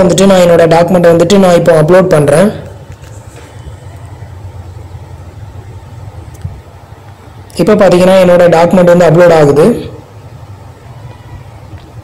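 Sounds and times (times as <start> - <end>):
low steady rumble: 2.2 - 8.2.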